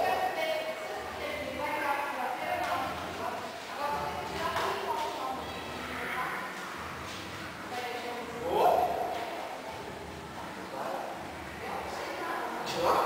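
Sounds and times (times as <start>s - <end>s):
voices in echoing hall: 0.0s - 13.0s.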